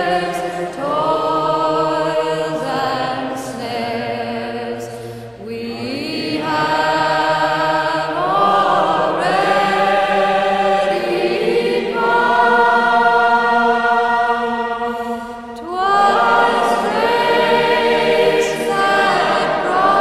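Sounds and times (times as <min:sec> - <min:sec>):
choir singing sustained chords: 0:00.0 - 0:20.0.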